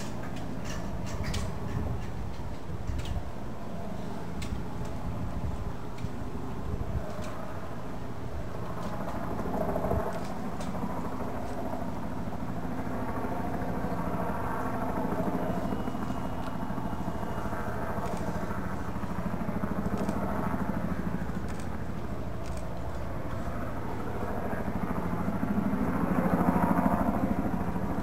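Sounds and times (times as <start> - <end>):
faint sharp clicks: 21.4 - 23.5.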